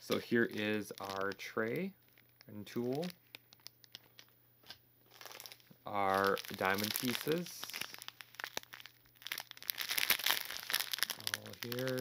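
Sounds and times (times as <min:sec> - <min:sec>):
plastic packets crinkling: 0:00.0 - 0:12.0.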